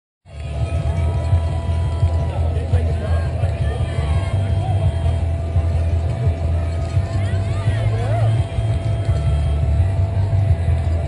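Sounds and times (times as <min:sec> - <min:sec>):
heavy low rumble: 0:00.3 - 0:11.0
music over public address: 0:00.3 - 0:11.0.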